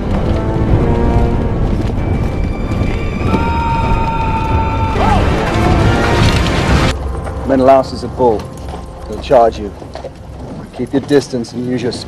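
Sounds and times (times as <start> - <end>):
film soundtrack music: 0.0 - 12.0
low rumble of army with horses: 0.0 - 12.0.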